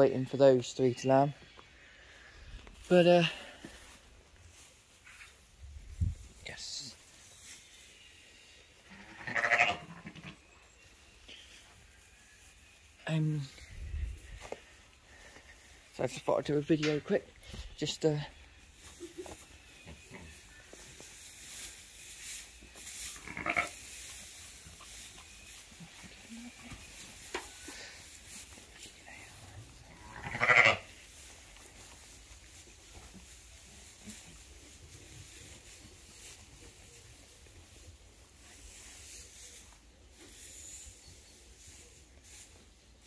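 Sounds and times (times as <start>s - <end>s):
sheep bleating: 8.8s - 10.4s, 23.2s - 23.8s, 29.9s - 30.9s
hay rustling in metal rack: 20.1s - 43.0s.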